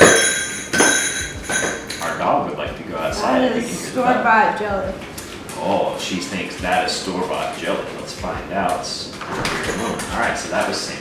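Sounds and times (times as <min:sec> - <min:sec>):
ceramic plate clinking and ringing: 0:00.0 - 0:02.2.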